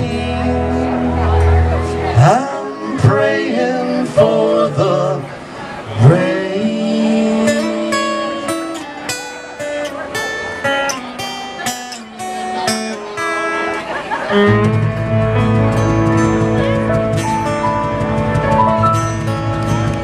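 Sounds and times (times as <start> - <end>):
upright bass: 0.0 - 5.2, 9.6 - 20.0
strummed acoustic guitar: 0.0 - 20.0
held melody notes: 7.2 - 20.0.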